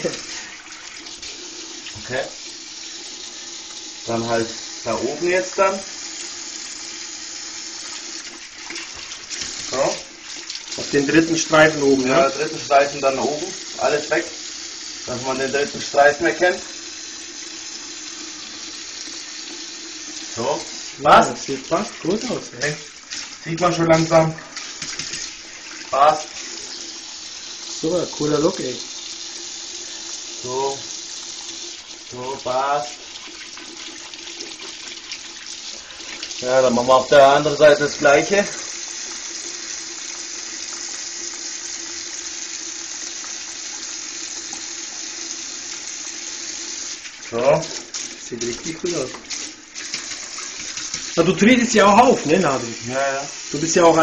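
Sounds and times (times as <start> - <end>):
tap water running into sink: 0.0 - 54.0.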